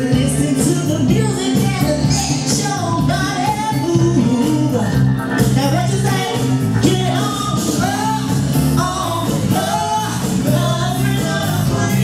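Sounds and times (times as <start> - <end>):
bass-heavy music: 0.0 - 12.0
woman singing live: 0.0 - 12.0.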